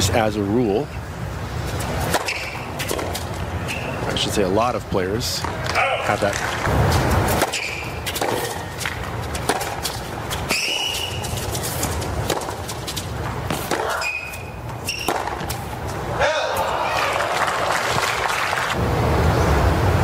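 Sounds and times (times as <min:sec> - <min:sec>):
tennis ball struck by rackets: 0:02.0 - 0:03.9, 0:05.4 - 0:11.2, 0:12.2 - 0:15.7.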